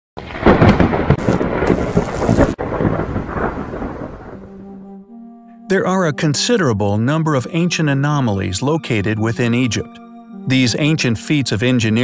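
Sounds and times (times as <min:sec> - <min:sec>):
rain: 0:00.2 - 0:04.4
rumbling thunder: 0:00.2 - 0:04.9.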